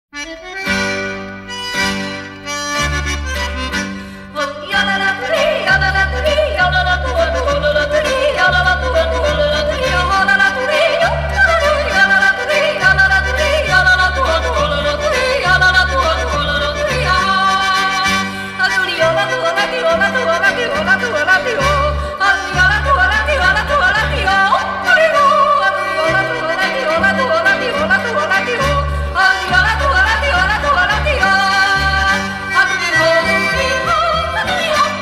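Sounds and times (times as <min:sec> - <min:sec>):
folk music accompaniment: 0:00.2 - 0:35.0.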